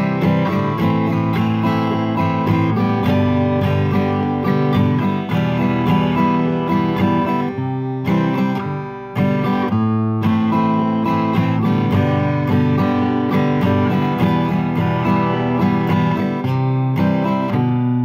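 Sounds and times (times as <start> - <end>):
acoustic guitar strumming: 0.0 - 18.0.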